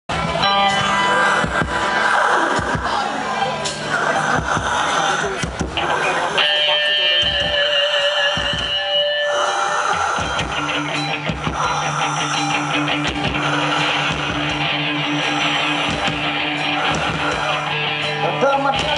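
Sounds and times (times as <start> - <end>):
live rock band playing: 0.1 - 18.9.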